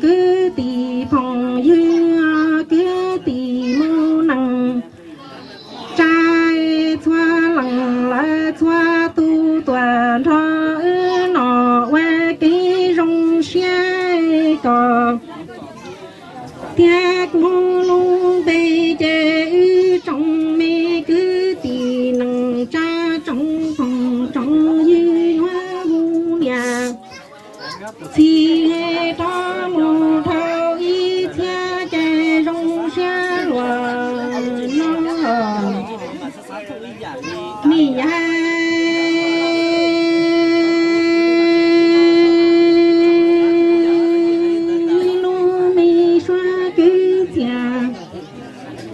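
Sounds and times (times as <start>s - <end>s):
woman singing unaccompanied: 0.0s - 5.0s, 5.7s - 15.4s, 16.6s - 27.0s, 28.0s - 36.1s, 37.4s - 48.2s
people chattering: 0.0s - 48.9s
person singing held note: 26.5s - 27.0s.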